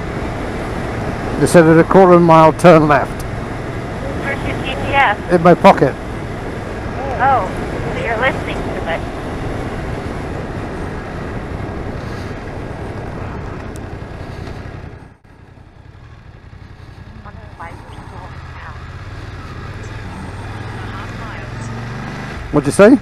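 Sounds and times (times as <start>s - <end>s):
motorcycle engine running: 0.0s - 22.9s
wind rush over microphone: 6.0s - 15.2s.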